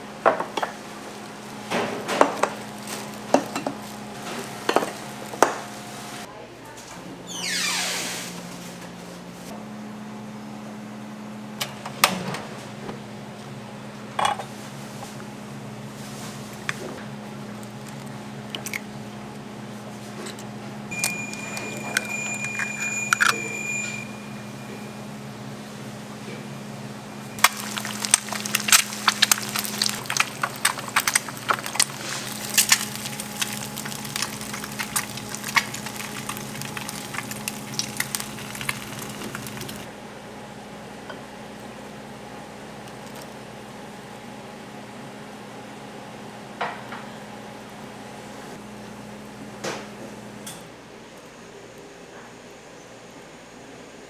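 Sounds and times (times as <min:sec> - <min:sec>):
eggs frying in hot oil: 0:00.4 - 0:06.3, 0:27.4 - 0:39.9
egg cracking: 0:01.0 - 0:05.6, 0:17.4 - 0:19.5, 0:27.4 - 0:39.9
steady low hum: 0:08.4 - 0:54.0
short high tone: 0:20.9 - 0:25.0.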